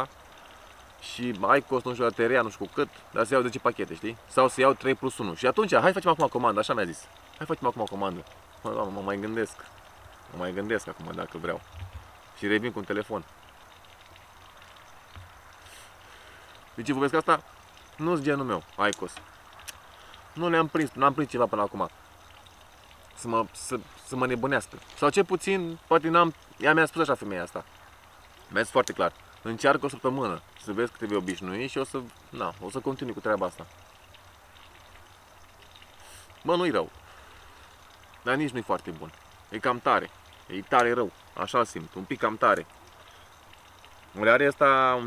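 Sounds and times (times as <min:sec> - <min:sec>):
outdoor background hiss: 0:00.0 - 0:45.0
breathy exhale: 0:15.6 - 0:16.6, 0:36.0 - 0:36.3, 0:37.0 - 0:37.8.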